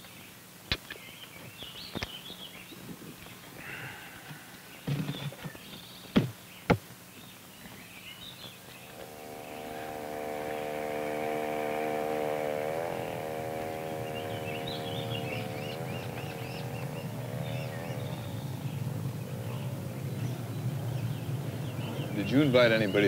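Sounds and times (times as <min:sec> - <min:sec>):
birds chirping: 0:00.0 - 0:23.0
small outboard motor running: 0:03.6 - 0:06.0, 0:08.0 - 0:23.0.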